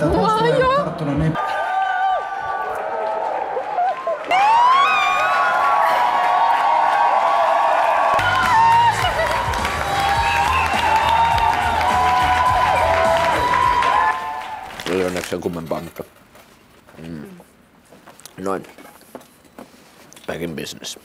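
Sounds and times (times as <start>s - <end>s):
crowd cheering and whooping: 1.4s - 14.9s.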